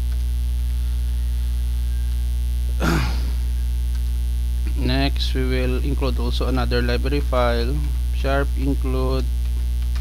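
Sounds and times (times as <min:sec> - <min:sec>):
electrical mains hum: 0:00.0 - 0:10.0
person coughing: 0:02.8 - 0:03.4.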